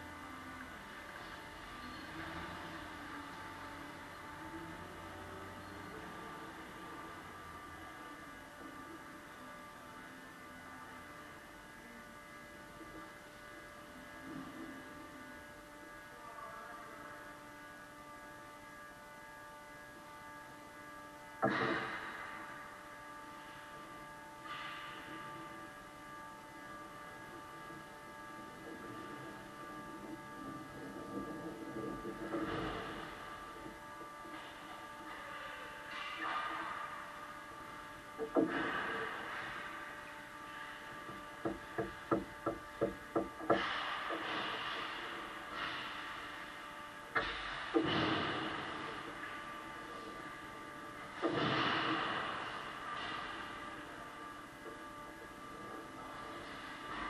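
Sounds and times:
faint distant sounds: 0.0s - 57.0s
steady hum of ice rink: 0.0s - 57.0s
steady scraping hiss: 20.1s - 57.0s.

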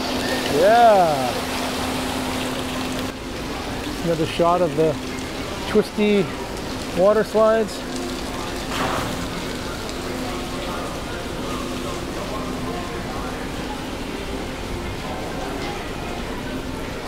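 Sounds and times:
water spraying and splashing: 0.0s - 17.0s.

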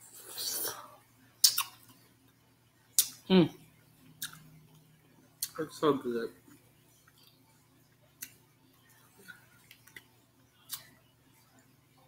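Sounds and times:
wet lip-smacking: 1.4s - 1.8s, 4.2s - 4.5s.

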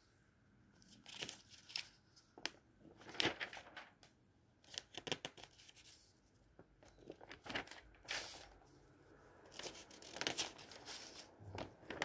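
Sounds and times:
glossy paper crinkling: 3.0s - 4.0s, 7.0s - 8.7s.

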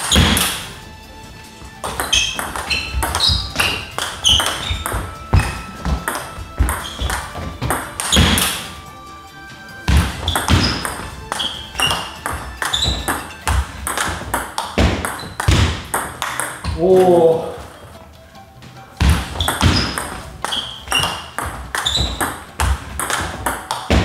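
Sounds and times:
background music: 0.0s - 24.0s
ping pong ball clicking: 1.8s - 8.8s, 10.0s - 17.1s, 19.2s - 24.0s.

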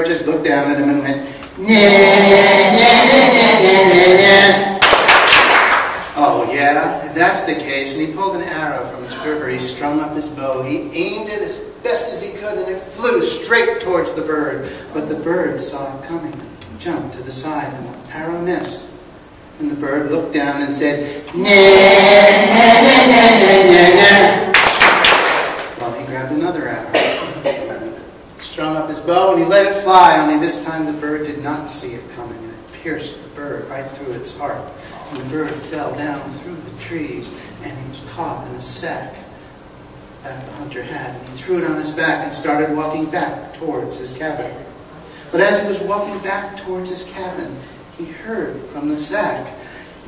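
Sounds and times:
group chanting taunt: 1.6s - 4.8s, 21.3s - 24.6s
sharp hand clap: 4.8s - 6.2s, 24.5s - 25.8s.

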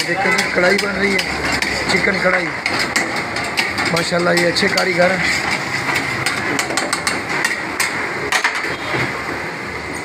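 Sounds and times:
metal spatula scraping pan: 0.0s - 7.6s.

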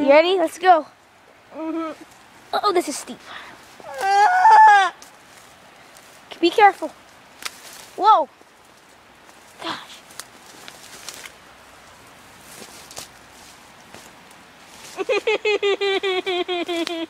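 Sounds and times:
faint footsteps: 5.0s - 15.1s
brushing through undergrowth: 5.0s - 15.2s.

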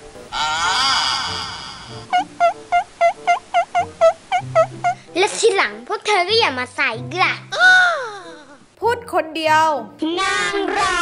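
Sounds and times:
squeaky warbling comic calls: 0.3s - 5.0s.

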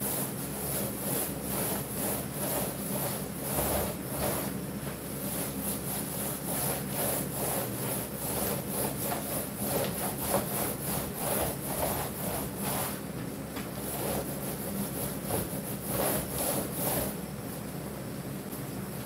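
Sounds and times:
paint applicator rubbing swish: 0.0s - 13.1s, 13.7s - 17.2s
steady low hum: 0.0s - 19.0s.

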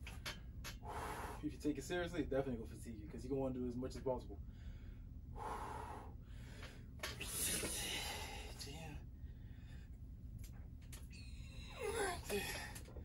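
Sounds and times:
man breathing hard: 0.7s - 1.5s, 4.5s - 10.0s.

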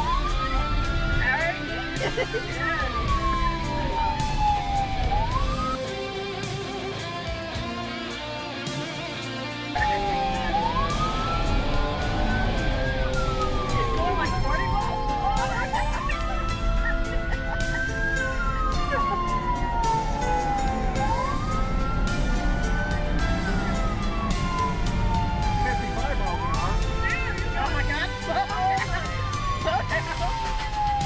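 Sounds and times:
police siren wailing: 0.0s - 6.0s, 9.8s - 31.0s.

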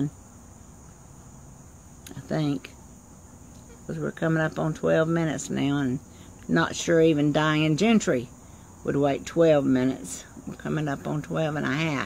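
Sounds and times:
insect chorus trilling: 0.0s - 12.0s.

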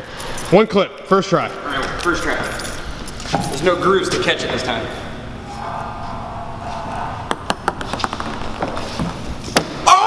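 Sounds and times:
ball rolling along metal rail: 5.4s - 9.4s
ping-pong ball bouncing: 7.1s - 8.8s.

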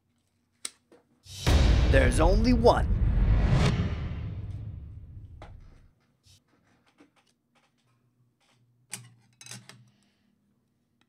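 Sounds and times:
transition sound effect: 1.3s - 5.8s.

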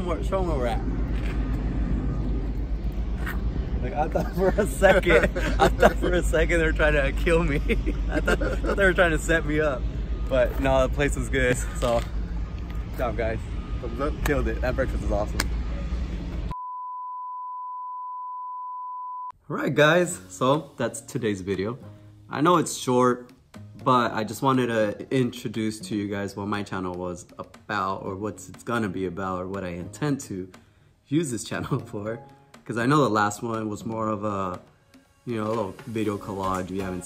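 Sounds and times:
steady electronic beep: 16.5s - 19.4s.

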